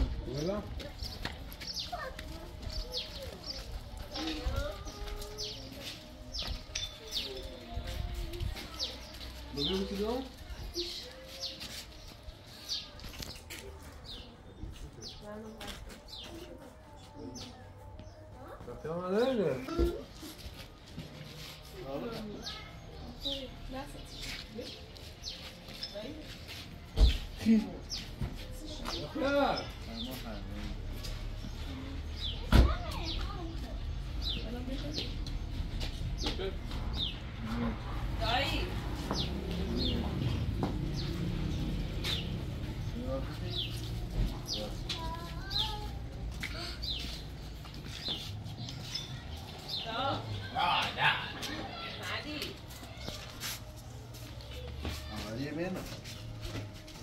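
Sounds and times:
quiet voices talking: 0.0 - 57.0
small birds chirping: 0.3 - 53.7.

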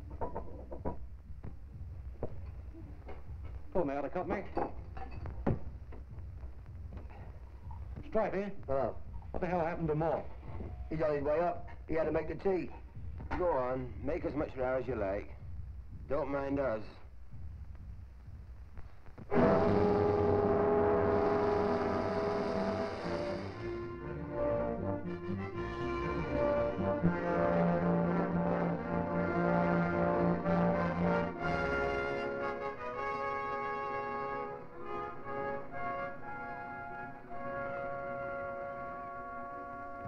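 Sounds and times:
orchestral music led by brass: 19.3 - 40.0.

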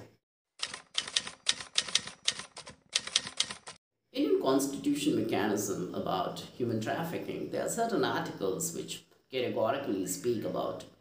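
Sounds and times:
typewriter key strikes: 0.6 - 3.8.

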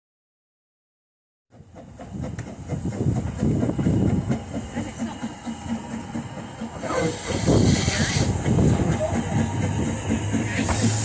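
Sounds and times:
steam locomotive pulsing rumble: 1.5 - 11.0.

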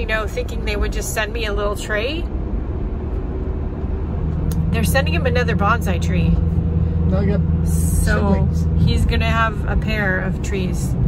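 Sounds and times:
car cabin engine and road noise: 0.0 - 11.0.

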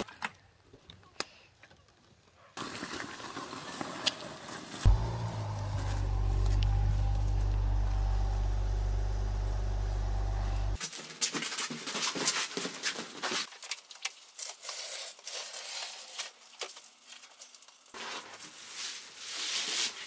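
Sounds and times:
engine idling: 4.9 - 10.8
paper crackling and rustling: 10.8 - 20.0.

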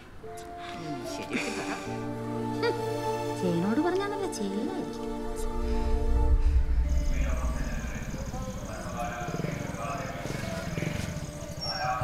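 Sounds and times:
night insects chirping: 1.8 - 12.0
motorcycle engine approaching: 4.8 - 12.0.

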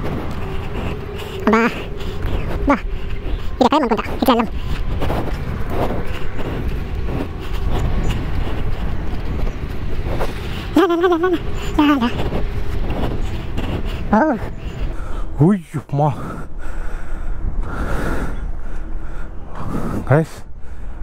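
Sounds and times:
wordless vocal sounds: 0.0 - 5.4
steady low rumbling: 0.0 - 21.0.

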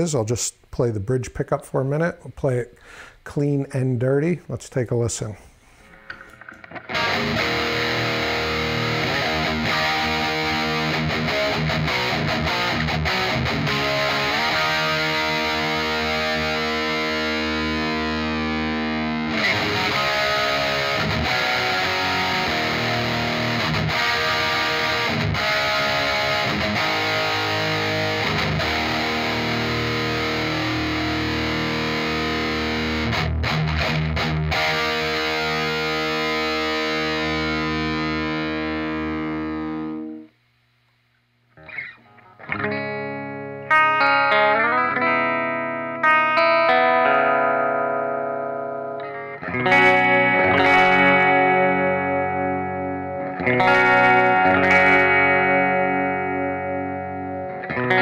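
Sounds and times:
distorted electric guitar chords: 5.8 - 40.4, 41.5 - 58.0.

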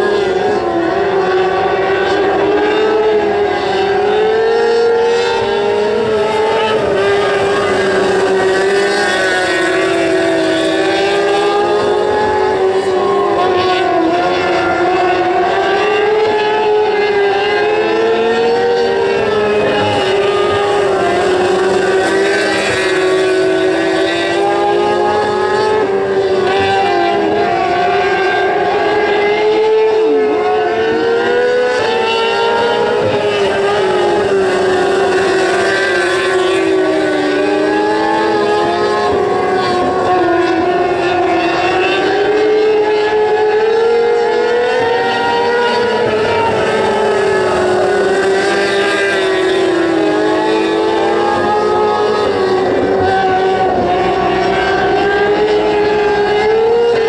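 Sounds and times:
racing car engines at high revs: 0.0 - 57.0.

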